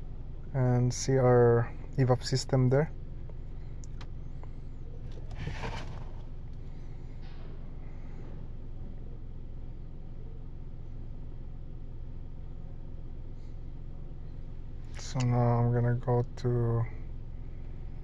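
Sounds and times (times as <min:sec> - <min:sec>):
brief rustling: 0:05.1 - 0:06.3.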